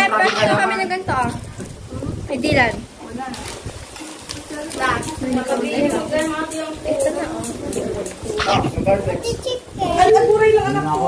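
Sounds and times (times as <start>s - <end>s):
people talking: 0.0s - 3.6s, 4.3s - 11.0s.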